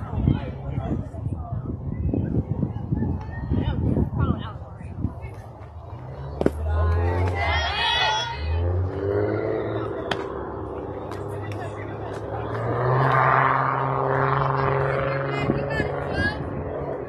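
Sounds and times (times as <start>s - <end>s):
people chattering and calling out: 0.0s - 17.0s.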